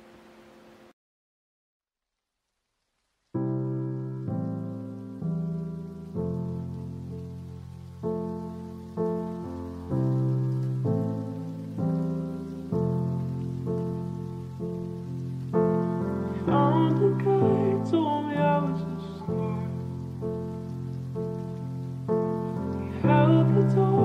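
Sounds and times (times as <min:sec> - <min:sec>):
slow piano chords: 0:03.3 - 0:24.0
person singing: 0:16.2 - 0:20.0, 0:22.8 - 0:24.0.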